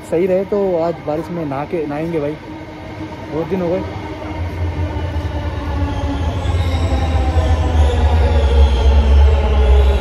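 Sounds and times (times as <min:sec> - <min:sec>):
metro train rumbling: 0:02.0 - 0:10.0.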